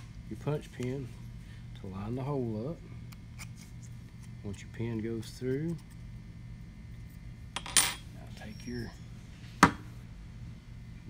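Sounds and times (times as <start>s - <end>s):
metal tool clinking on workbench: 7.6s - 8.0s.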